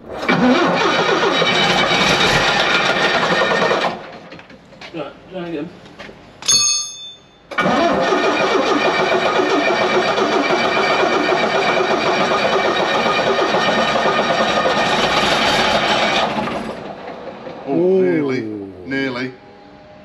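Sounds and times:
starter motor cranking diesel engine: 0.2 - 4.5, 7.5 - 17.9.

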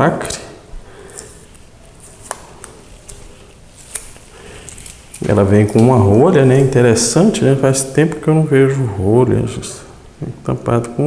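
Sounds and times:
plastic seal crinkling and tearing: 1.1 - 5.9.

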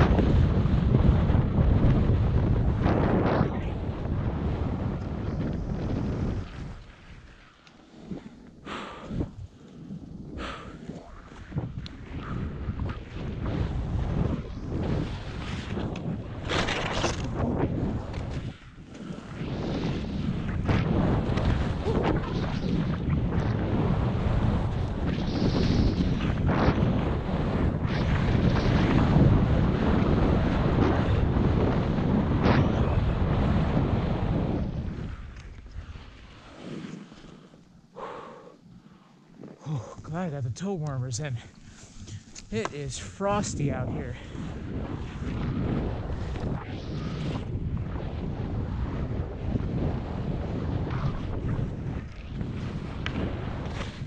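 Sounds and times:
wind rushing over microphone: 0.0 - 54.0
skis scraping over snow: 4.4 - 12.1, 13.0 - 21.9, 33.5 - 37.7, 40.0 - 47.5, 48.9 - 54.0.

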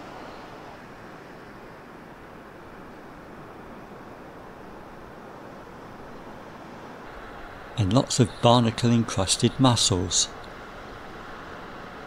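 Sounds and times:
rushing outdoor background noise: 0.0 - 12.0.

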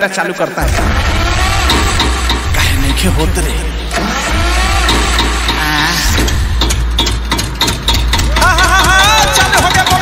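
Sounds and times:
dance remix beat with booming bass: 0.6 - 7.3
rising engine revving effect: 0.6 - 7.6.

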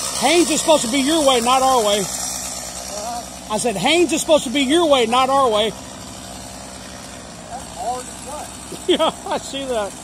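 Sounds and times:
engine hum: 0.0 - 10.0.

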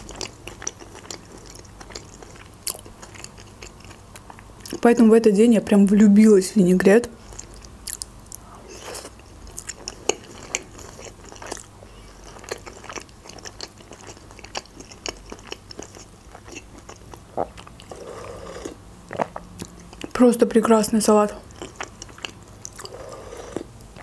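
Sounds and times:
chewing with wet mouth clicks: 0.0 - 4.8, 7.2 - 20.2, 21.4 - 24.0.

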